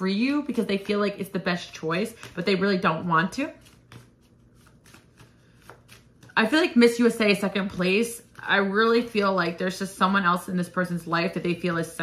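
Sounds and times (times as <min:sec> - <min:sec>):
cards being shuffled: 0:03.5 - 0:06.4.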